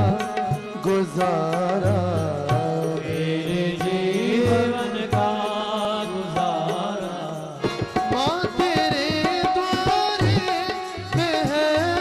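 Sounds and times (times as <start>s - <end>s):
instrumental accompaniment: 0.0s - 12.0s.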